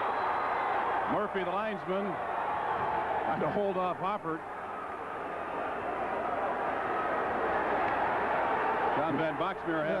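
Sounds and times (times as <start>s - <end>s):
arena crowd roaring: 0.0s - 10.0s.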